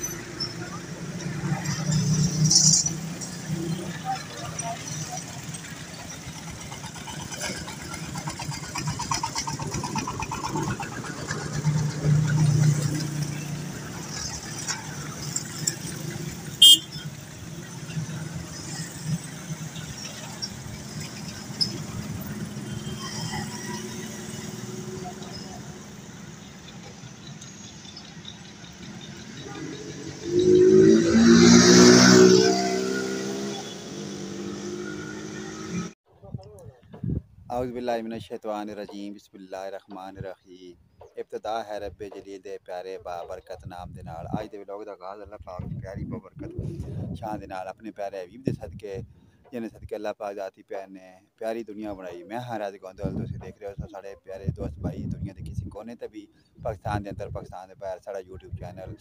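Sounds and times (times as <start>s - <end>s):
car engines passing: 0.0s - 36.0s.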